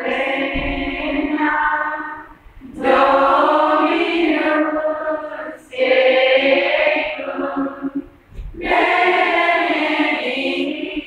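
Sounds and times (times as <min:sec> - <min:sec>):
women singing a hymn: 0:00.0 - 0:11.0.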